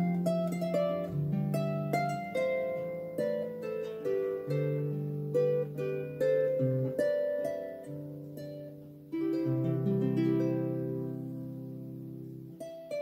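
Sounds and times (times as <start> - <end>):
harp plucked melody: 0.0 - 13.0.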